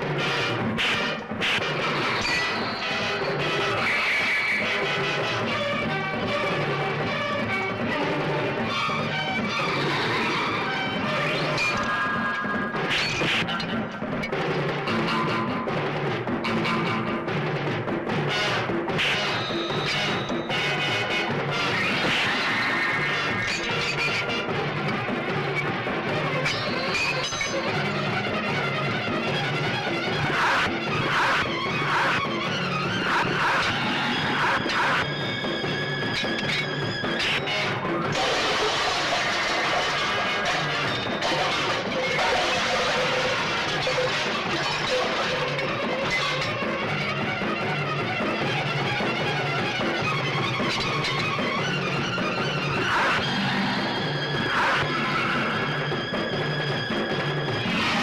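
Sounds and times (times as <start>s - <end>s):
rhythmic film score: 0.0s - 58.0s
sharp hit and crash effects: 33.0s - 47.0s, 57.4s - 58.0s.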